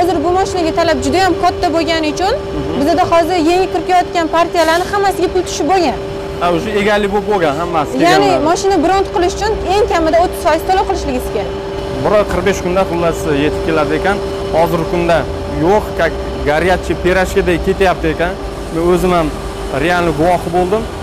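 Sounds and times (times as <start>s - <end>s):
steady hum and low rumble: 0.0s - 21.0s
man speaking: 2.5s - 3.0s, 6.4s - 8.6s, 11.9s - 20.9s.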